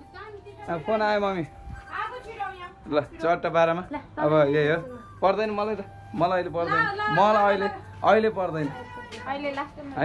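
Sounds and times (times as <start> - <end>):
voices speaking: 0.0 - 10.0.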